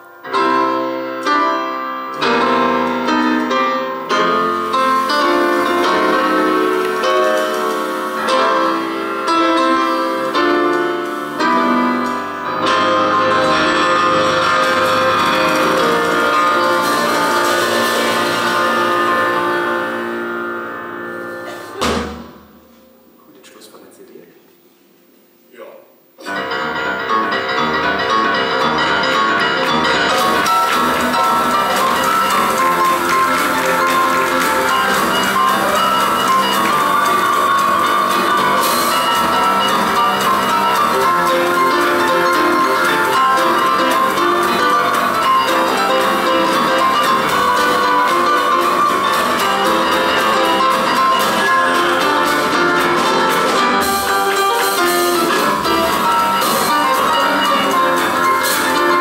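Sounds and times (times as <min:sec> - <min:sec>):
grand pianos playing boogie-woogie: 0:00.0 - 0:23.3, 0:26.2 - 0:59.0
drum kit: 0:02.2 - 0:23.0, 0:27.6 - 0:59.0.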